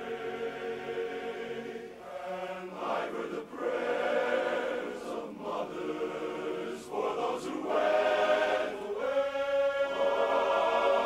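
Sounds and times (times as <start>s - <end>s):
men's chorus singing in harmony: 0.0s - 11.0s.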